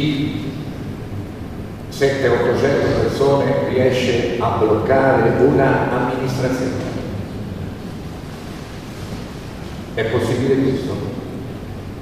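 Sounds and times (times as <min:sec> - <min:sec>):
faint low hum: 0:00.0 - 0:12.0
room noise hiss: 0:00.0 - 0:12.0.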